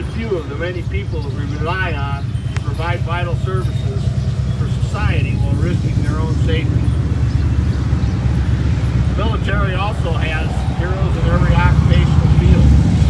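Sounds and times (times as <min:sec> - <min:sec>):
man speaking into a microphone: 0:00.0 - 0:07.3, 0:09.1 - 0:13.0
vehicle engine rumbling: 0:00.0 - 0:13.0.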